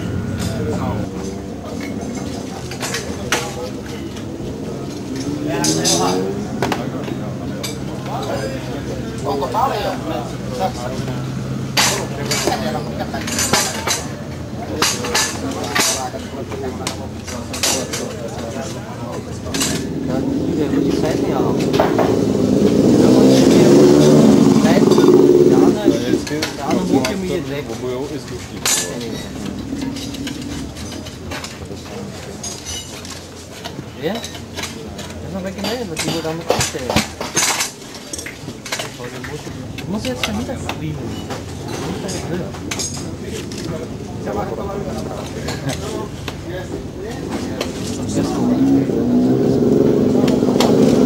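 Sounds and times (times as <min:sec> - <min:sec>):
murmur of voices: 0:00.0 - 0:51.0.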